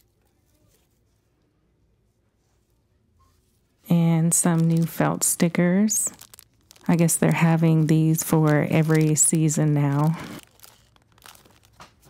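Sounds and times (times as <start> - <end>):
plastic packaging crinkling: 4.0 - 12.0.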